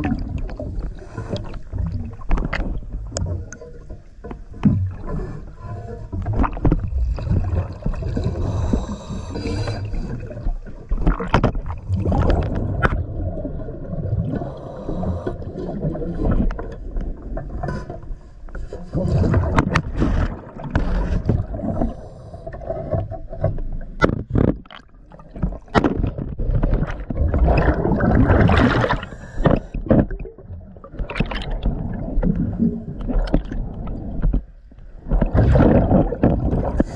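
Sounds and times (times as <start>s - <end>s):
underwater clicks and knocks: 0.0s - 8.4s, 10.0s - 13.6s, 19.2s - 22.0s, 22.6s - 36.9s
underwater bubbles rumbling: 0.0s - 36.9s
sharp clicks and knocks: 23.4s - 27.2s.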